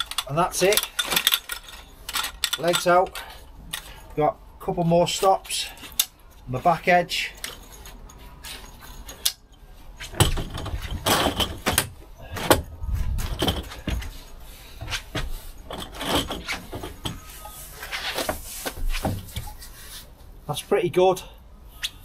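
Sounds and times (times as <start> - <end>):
camp chair frame clicking and rattling: 0.0 - 4.2, 5.1 - 19.7.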